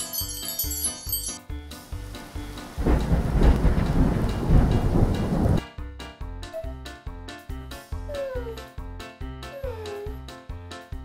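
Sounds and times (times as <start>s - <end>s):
heavy rain: 1.8s - 5.6s
thunder rumbling: 2.2s - 5.6s.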